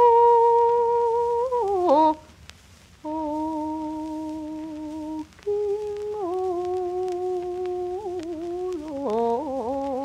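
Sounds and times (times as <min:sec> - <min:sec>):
old record music held notes: 0:00.0 - 0:10.0
record surface crackle: 0:00.0 - 0:10.0.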